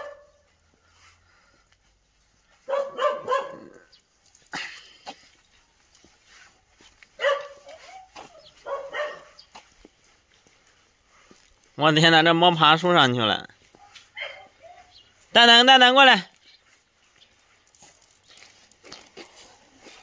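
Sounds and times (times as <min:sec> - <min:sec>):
small dog barking: 0:00.0 - 0:00.4, 0:02.6 - 0:03.9, 0:07.2 - 0:09.5, 0:13.8 - 0:15.0.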